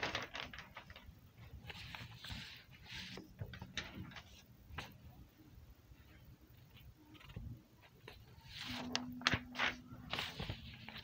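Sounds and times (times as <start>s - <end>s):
paper rustling: 0.0s - 5.0s, 6.6s - 11.0s.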